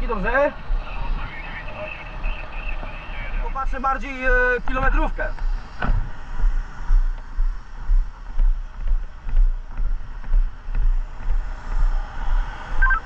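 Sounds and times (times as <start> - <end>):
motorway traffic noise: 0.0 - 13.0
wind rumble on microphone: 4.2 - 13.0.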